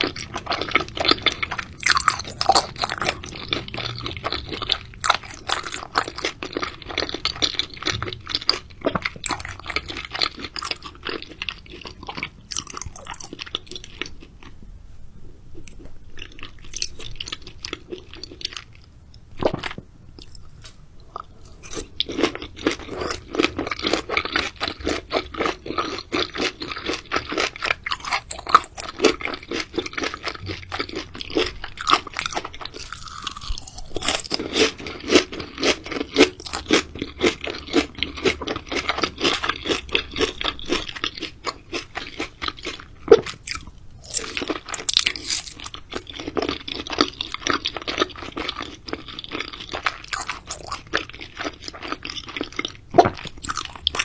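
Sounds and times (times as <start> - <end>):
wet crunchy chewing: 0.0 - 14.5, 19.4 - 54.0.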